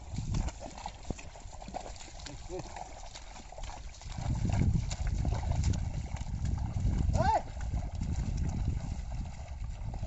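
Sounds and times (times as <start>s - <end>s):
hooves squelching in wet mud: 0.0s - 10.0s
person calling out: 7.2s - 7.5s.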